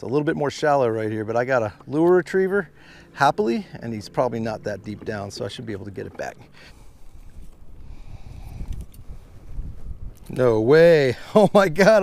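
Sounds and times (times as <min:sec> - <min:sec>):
wind buffeting microphone: 0:04.0 - 0:12.0.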